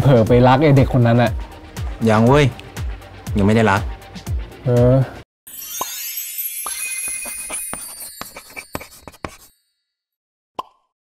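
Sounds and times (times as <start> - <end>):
shimmering sparkle with pops: 5.5 - 9.7.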